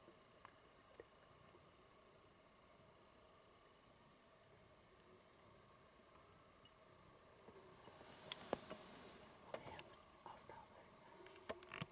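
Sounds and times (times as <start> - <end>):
faint whisper: 9.2 - 11.4.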